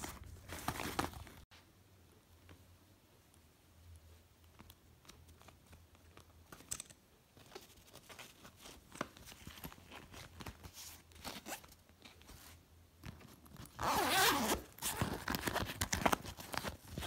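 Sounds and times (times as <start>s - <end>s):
backpack fabric rustling: 0.0s - 1.4s, 7.4s - 17.0s.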